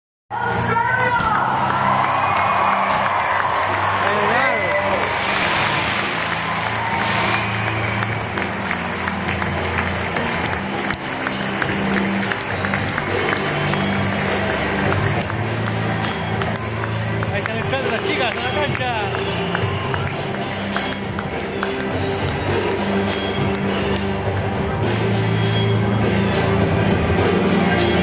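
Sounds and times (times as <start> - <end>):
music over stadium loudspeakers: 0.3 - 28.0
crowd cheering and clapping: 0.4 - 28.0.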